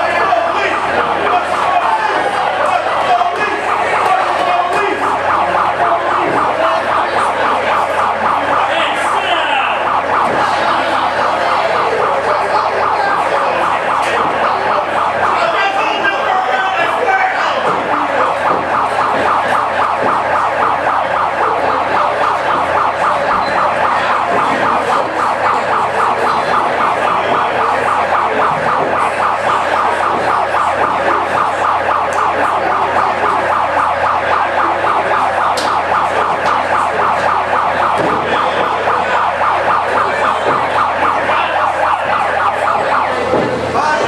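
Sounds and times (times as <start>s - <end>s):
emergency siren yelping: 0.0s - 44.0s.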